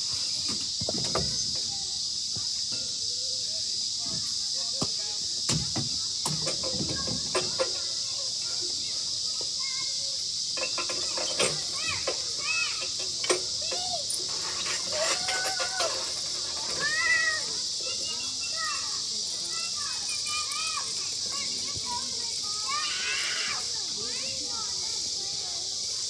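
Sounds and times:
children calling and chattering: 0.0 - 26.0
steady high hiss: 0.0 - 26.0.

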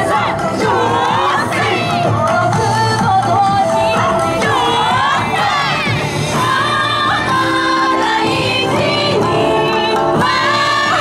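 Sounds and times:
dance music over loudspeakers: 0.0 - 11.0
dancers shouting: 4.4 - 6.0.

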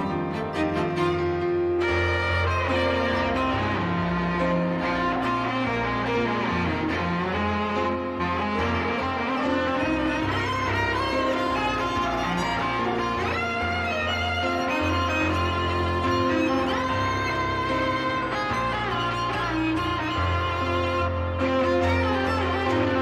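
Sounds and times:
cello: 0.0 - 23.0
piano: 0.0 - 23.0
violin: 0.0 - 23.0.

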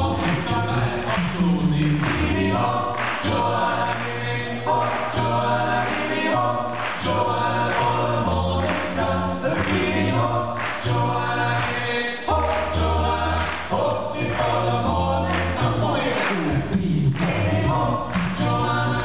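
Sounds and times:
deep bass voice: 0.0 - 2.9, 14.6 - 19.0
male vocal ensemble singing: 0.0 - 19.0.

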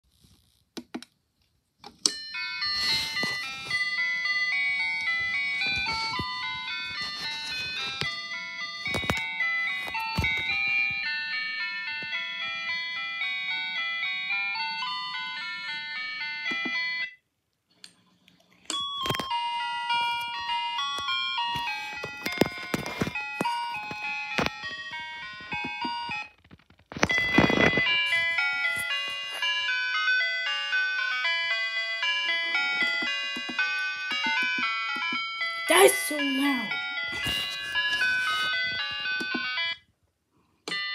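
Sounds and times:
electronic ice cream truck chime: 2.0 - 17.3, 18.7 - 39.9, 40.7 - 40.9.

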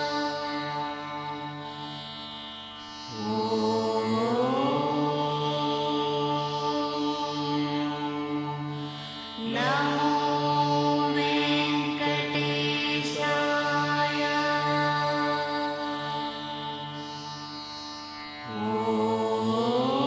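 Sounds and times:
devotional chant music: 0.0 - 20.0
steady drone: 0.0 - 20.0.

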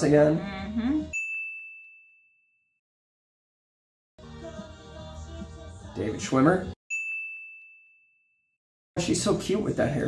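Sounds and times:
bell ding: 1.2 - 2.5, 6.9 - 8.4.

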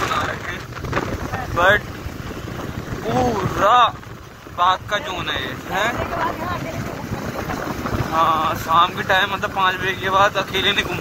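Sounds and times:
motorcycle road noise: 0.0 - 11.0
wind rushing over microphone: 0.0 - 11.0.

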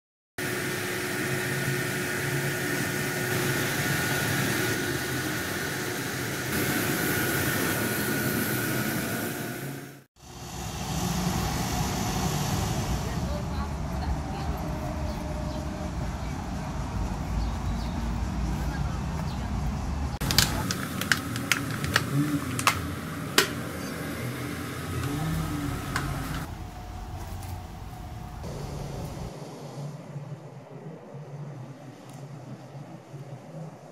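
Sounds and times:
distant traffic hum: 10.2 - 33.9.

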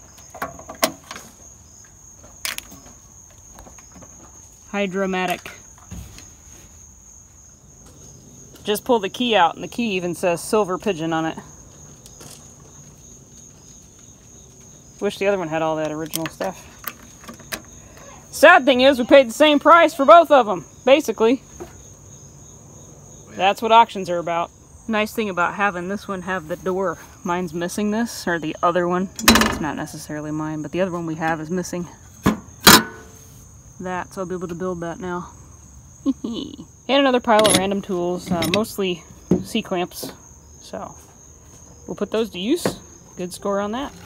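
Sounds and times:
crickets trilling: 0.0 - 44.0
metal door closing with a clank: 29.2 - 29.7.

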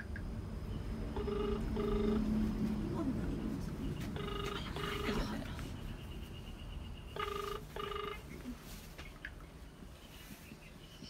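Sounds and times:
phone ringback tone: 1.1 - 2.4, 4.2 - 5.2, 7.2 - 8.4.

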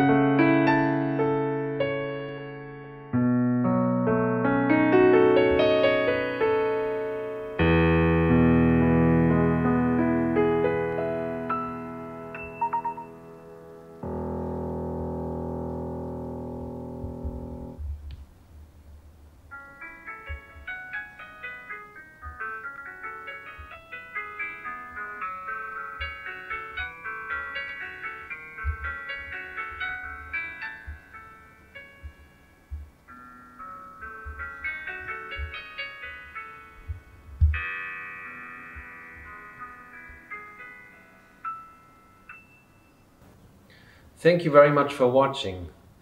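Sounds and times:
slow piano music: 0.0 - 44.0.

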